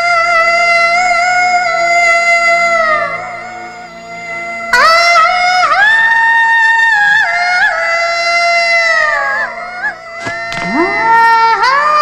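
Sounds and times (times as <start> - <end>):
musical accompaniment: 0.0 - 12.0
woman singing long high note: 10.2 - 12.0.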